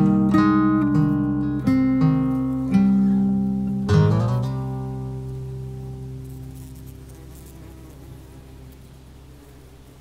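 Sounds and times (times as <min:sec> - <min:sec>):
faint crackles: 0:00.0 - 0:10.0
flying insects buzzing: 0:00.0 - 0:10.0.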